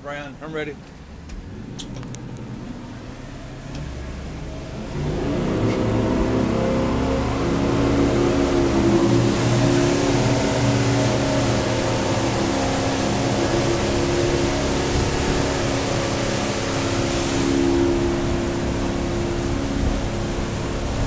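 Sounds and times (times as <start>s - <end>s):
outboard motors revving: 0.0s - 21.0s
rushing water: 0.0s - 21.0s.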